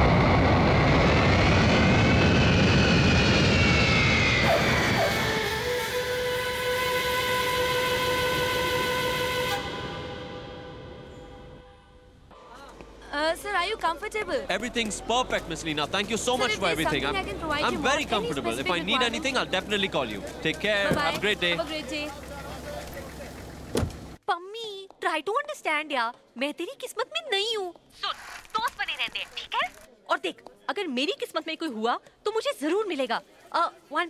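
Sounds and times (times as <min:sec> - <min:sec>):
jet engines whining: 0:00.0 - 0:11.6, 0:14.5 - 0:24.1
car door shutting: 0:20.8 - 0:21.3, 0:23.7 - 0:24.1.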